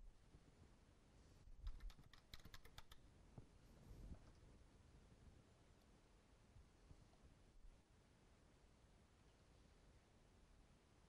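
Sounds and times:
keyboard typing: 1.6 - 3.0.

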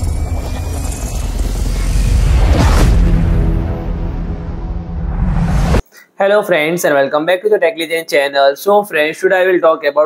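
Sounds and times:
deep steady rumble: 0.0 - 5.8
faint rising tone: 0.0 - 5.8.

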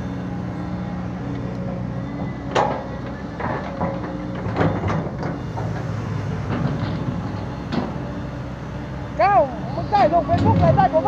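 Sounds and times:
excavator diesel engine running: 0.0 - 11.0.

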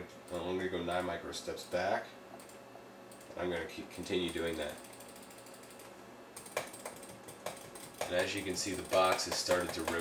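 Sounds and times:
stepper motor clicks: 4.2 - 10.0.

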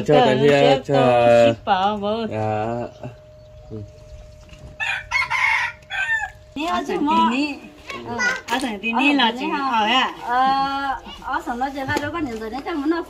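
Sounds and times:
rooster crowing: 4.6 - 6.6.

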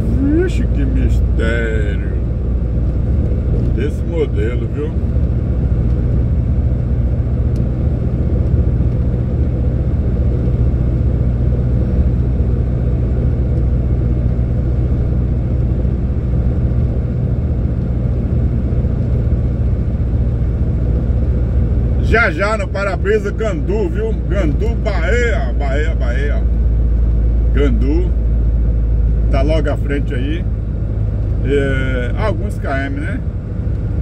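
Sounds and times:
road noise: 0.0 - 34.0
truck diesel engine drone: 0.0 - 34.0.

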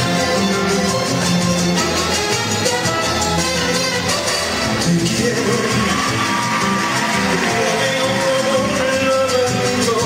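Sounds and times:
guitars: 0.0 - 10.0
trumpets: 0.0 - 10.0
man singing into microphone: 4.6 - 10.0.

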